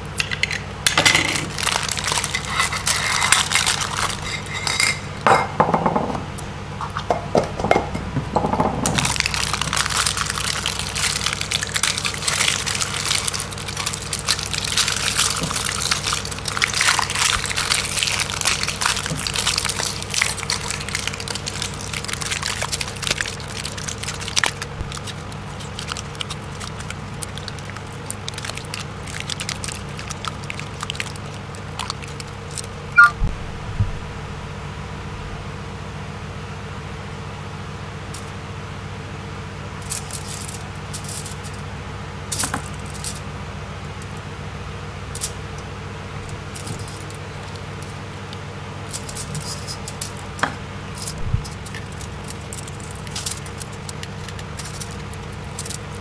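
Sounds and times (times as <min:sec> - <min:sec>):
foil crinkling and tearing: 0:01.3 - 0:04.9, 0:09.0 - 0:32.8, 0:39.8 - 0:41.7, 0:42.3 - 0:43.3, 0:46.2 - 0:56.0
low hum: 0:28.4 - 0:35.6.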